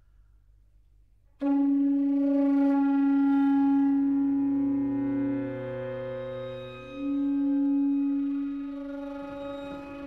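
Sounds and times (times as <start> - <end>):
lower held note: 1.4 - 10.0
wind instrument long note: 1.4 - 10.0.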